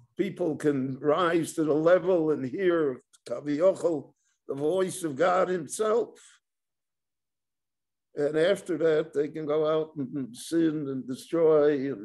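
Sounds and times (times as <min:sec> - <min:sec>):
man talking: 0:00.0 - 0:06.3, 0:08.2 - 0:12.0.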